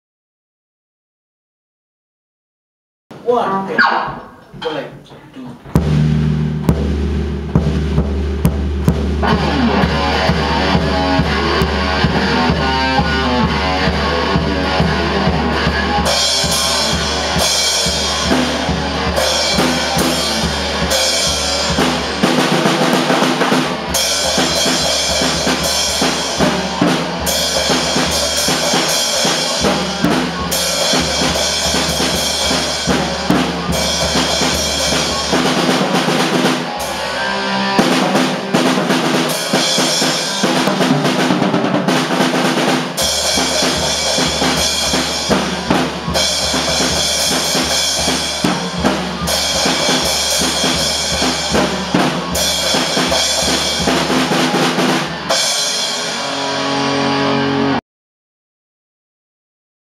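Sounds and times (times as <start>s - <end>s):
drum kit beating: 3.1s - 57.1s
rock band playing: 3.7s - 4.5s, 5.6s - 57.8s
deep bass: 5.7s - 23.5s
electric guitar: 9.1s - 57.8s.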